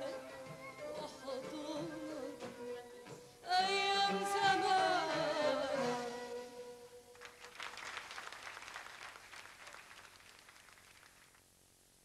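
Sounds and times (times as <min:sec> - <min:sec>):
faint audience applause: 0:07.1 - 0:11.5.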